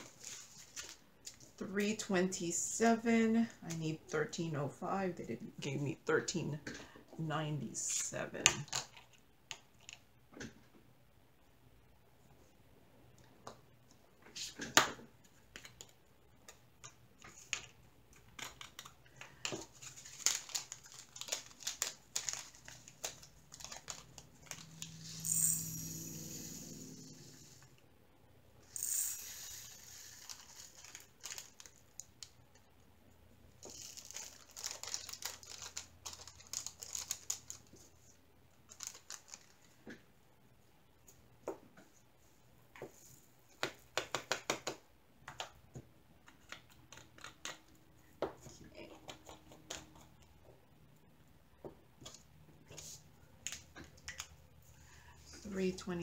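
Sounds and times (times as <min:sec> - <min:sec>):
plastic bags crinkling: 0:18.5 - 0:25.2, 0:29.8 - 0:32.4, 0:33.6 - 0:37.8, 0:38.7 - 0:39.8.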